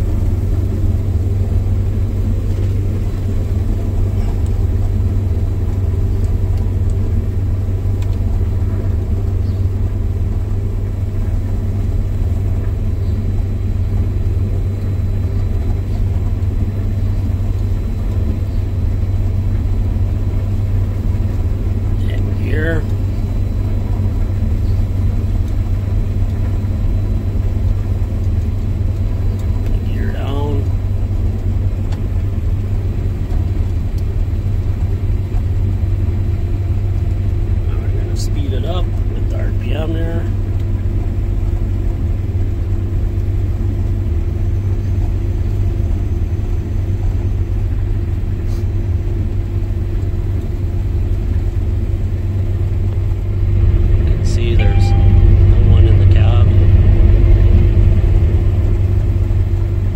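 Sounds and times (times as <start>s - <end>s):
combine harvester engine drone: 0.0s - 59.9s.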